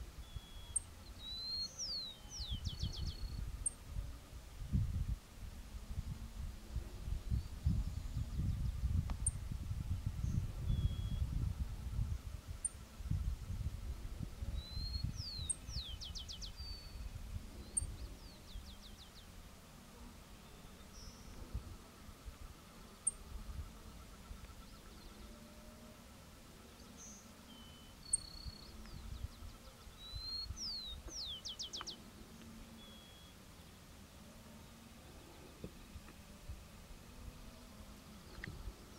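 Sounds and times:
wind rumbling on microphone: 2.4 - 19.0, 21.1 - 22.6, 23.2 - 25.2, 28.3 - 31.4
finch singing: 10.7 - 11.3, 27.0 - 32.0.

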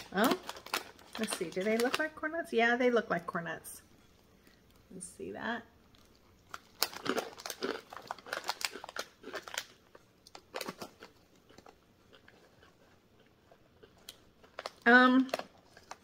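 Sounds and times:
crunchy snack being chewed: 5.9 - 16.0.

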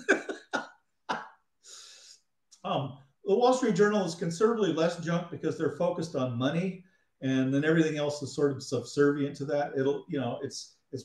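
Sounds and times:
man laughing and coughing: 0.0 - 1.4
man breathing in: 1.6 - 2.3.

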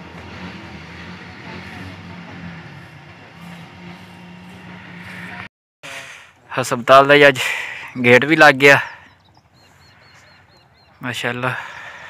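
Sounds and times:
small engine running: 0.0 - 6.2.

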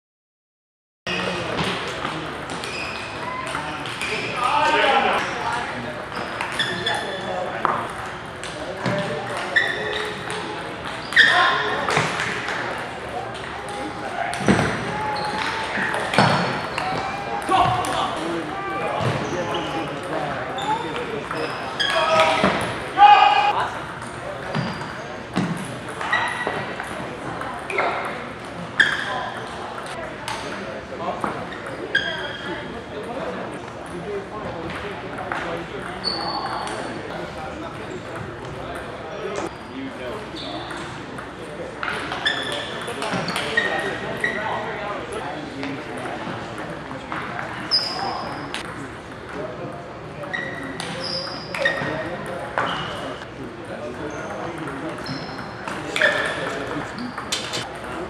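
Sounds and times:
table tennis balls pinging: 6.1 - 18.4, 19.0 - 22.9, 23.5 - 30.6, 54.2 - 58.0.

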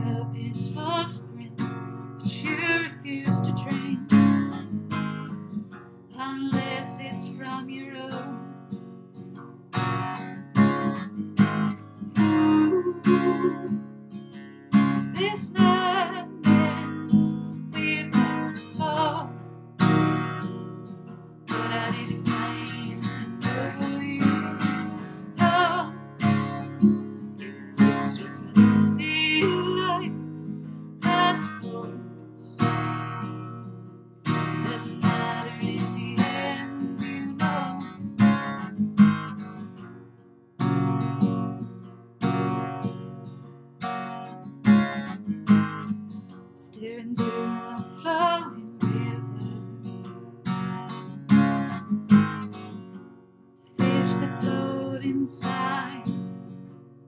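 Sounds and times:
woman singing: 0.0 - 1.6, 2.2 - 4.3, 6.1 - 8.6, 12.1 - 13.9, 15.0 - 19.4, 21.5 - 26.5, 27.2 - 30.3, 31.0 - 32.7, 34.3 - 38.1, 46.6 - 49.8, 53.7 - 56.3
acoustic guitar strumming: 0.0 - 57.0.

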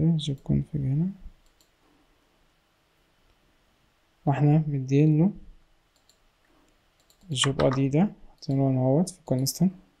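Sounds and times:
man speaking: 0.0 - 1.2, 7.3 - 9.8
faint mouse clicks: 1.3 - 1.8, 5.9 - 9.6.

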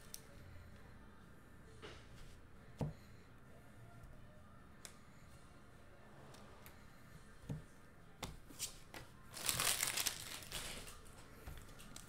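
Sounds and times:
foil wrapper crinkling: 9.3 - 11.0.

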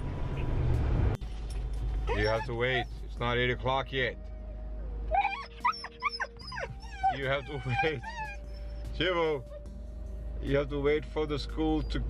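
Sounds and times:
dog whining and whimpering: 2.1 - 2.9, 5.1 - 9.7.

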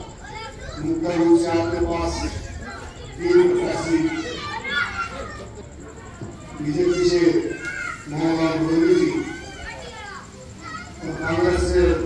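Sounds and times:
children's voices: 0.0 - 12.0
man speaking through microphone: 0.7 - 4.4, 6.6 - 9.4, 10.9 - 12.0.

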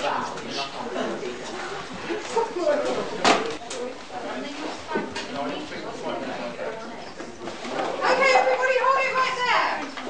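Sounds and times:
group of adults talking: 0.0 - 10.0.

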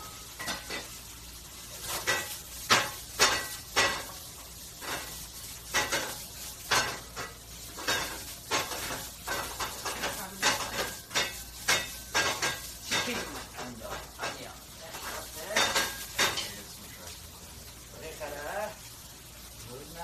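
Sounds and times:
food sizzling in frying pan: 0.0 - 20.0.

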